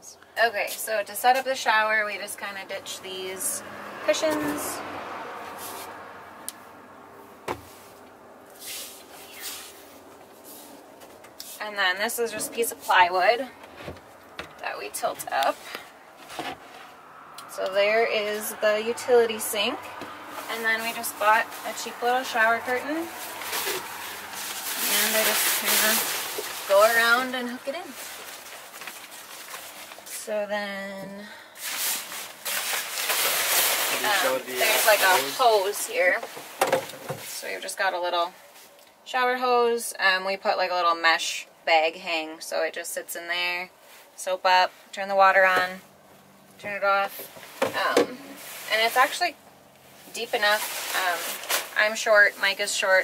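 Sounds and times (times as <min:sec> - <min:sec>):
cushion thump: 0:07.4 - 0:07.7
fabric swishing: 0:08.6 - 0:13.2, 0:22.8 - 0:30.1, 0:31.6 - 0:36.2
shower curtain rustling: 0:08.6 - 0:13.4, 0:20.4 - 0:30.3, 0:31.6 - 0:36.6, 0:48.3 - 0:49.3, 0:50.1 - 0:52.9.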